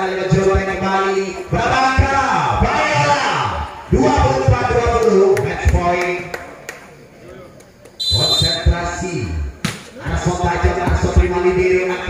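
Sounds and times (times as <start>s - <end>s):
man talking: 0.0s - 6.3s, 7.2s - 12.0s.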